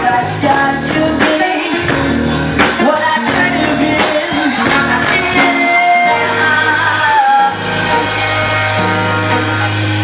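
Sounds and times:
live band music: 0.0 - 10.0
held high note: 7.4 - 10.0.

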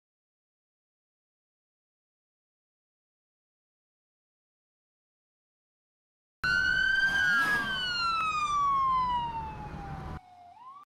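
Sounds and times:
emergency vehicle siren wailing: 6.4 - 10.9.

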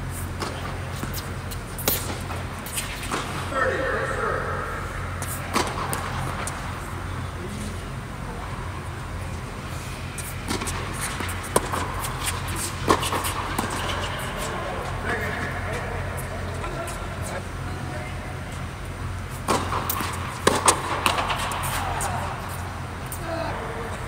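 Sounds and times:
steady low hum: 0.0 - 24.0
tennis balls struck by racquets: 0.3 - 6.9, 10.1 - 17.0, 19.3 - 23.3.

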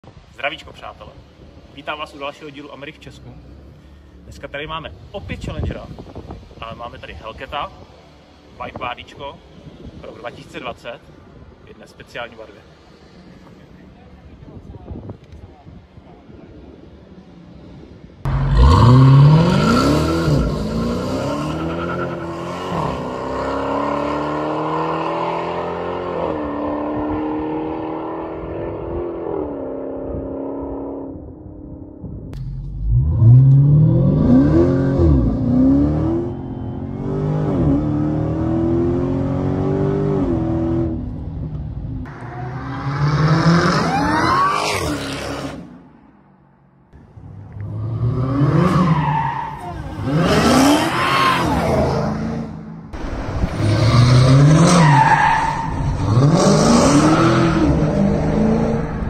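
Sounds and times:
car engine revving: 18.3 - 28.9, 32.4 - 41.2, 47.2 - 59.0.

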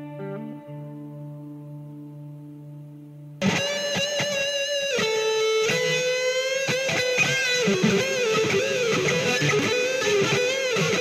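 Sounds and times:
electric guitar music: 0.0 - 11.0.

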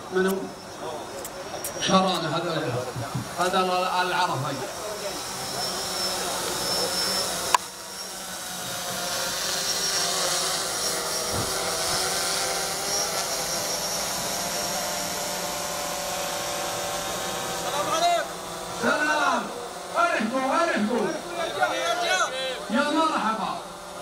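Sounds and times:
steady whirring: 0.0 - 24.0.

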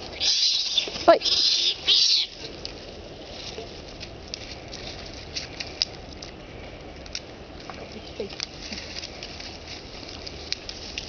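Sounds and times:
monkeys scampering on dry leaves: 0.1 - 6.7, 7.6 - 11.0.

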